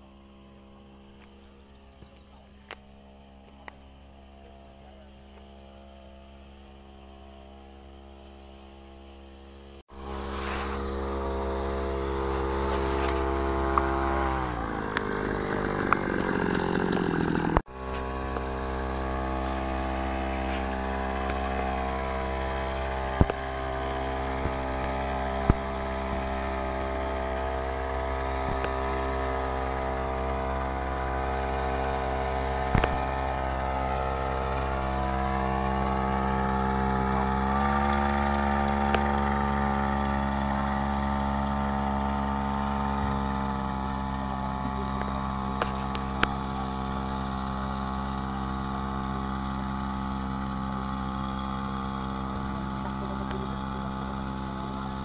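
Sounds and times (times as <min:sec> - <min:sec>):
small sprayer engine running: 0:00.0 - 0:55.0.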